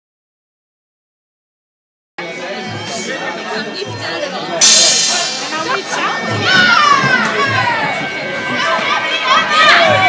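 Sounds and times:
crowd noise in a hall: 2.2 - 10.0.

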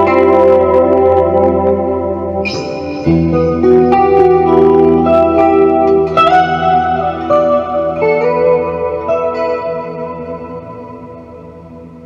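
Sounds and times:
clean electric guitar: 0.0 - 12.0.

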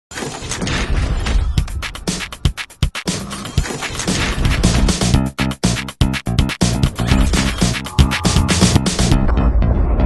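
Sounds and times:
sharp electronic beats: 4.1 - 9.5.

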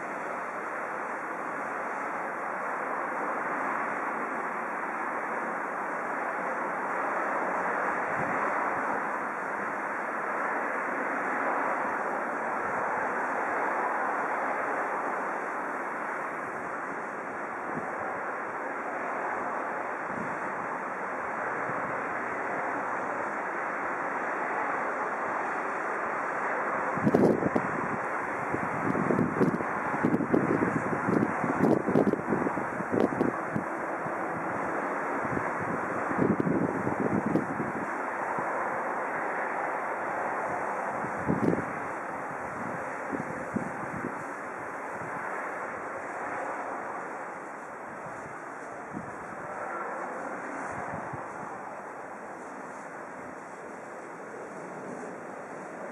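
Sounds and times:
wind on microphone: 0.0 - 55.9.

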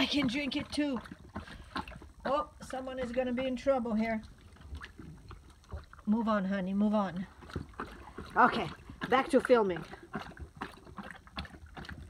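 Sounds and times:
dog lapping water from metal bowl: 0.0 - 12.0.

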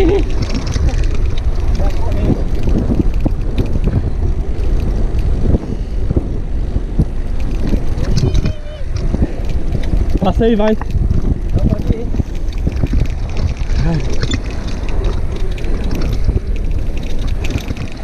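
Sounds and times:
bike rattling clicks and knocks: 0.0 - 18.0
bike tyres rumbling on dirt trail: 0.0 - 18.0
wind buffeting microphone: 0.0 - 18.0.

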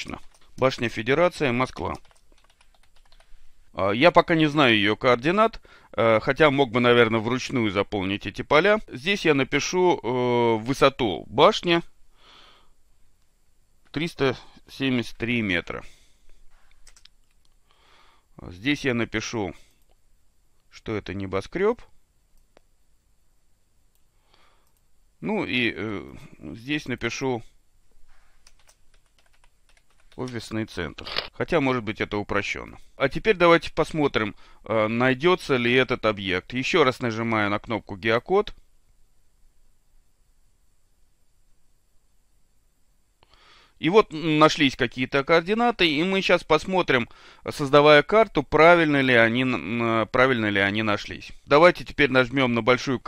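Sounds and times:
man talking: 0.0 - 2.1, 3.7 - 11.9, 13.9 - 16.0, 18.4 - 19.7, 20.7 - 21.9, 25.2 - 27.6, 30.2 - 38.6, 43.8 - 53.0
computer keyboard typing: 1.8 - 3.3, 16.8 - 17.4, 28.4 - 30.4.

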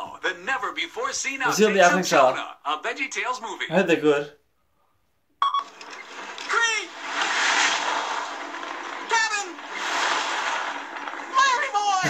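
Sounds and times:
hissing rush of noise: 6.6 - 11.4.

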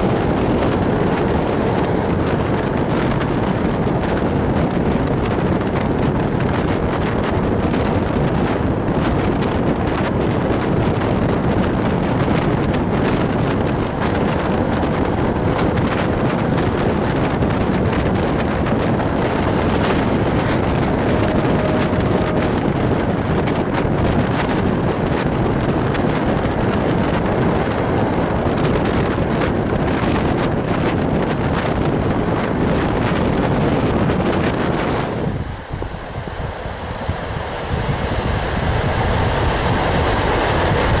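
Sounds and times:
train wheels rumbling on rail: 0.0 - 41.0
wind rushing over microphone: 0.0 - 41.0.

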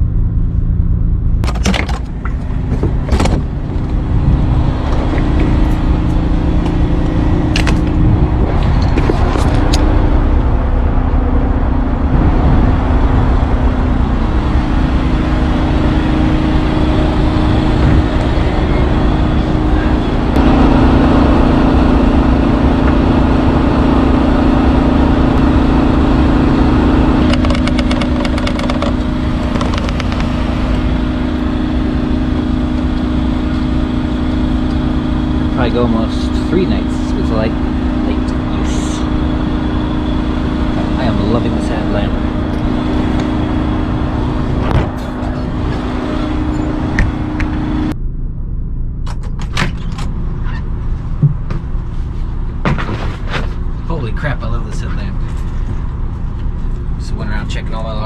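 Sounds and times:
engine droning: 0.0 - 58.0
sharp clicks and knocks: 27.2 - 30.8.

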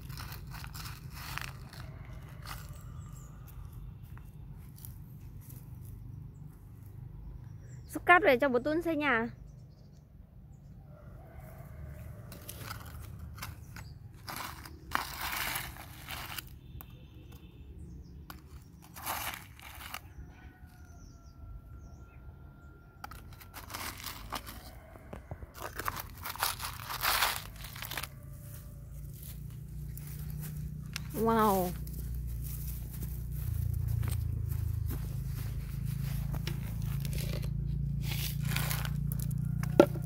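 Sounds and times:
toy shovel scraping gravel: 0.0 - 2.7, 12.3 - 16.6, 18.3 - 20.1, 23.0 - 24.8, 25.6 - 29.3, 36.0 - 40.0.

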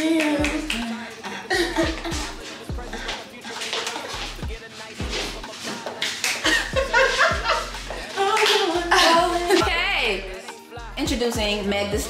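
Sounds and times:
person singing: 0.0 - 12.0
clapping drum beat: 0.2 - 0.9
deep bass: 0.4 - 0.8, 1.6 - 3.2, 4.2 - 5.5, 6.5 - 8.1, 8.8 - 12.0.

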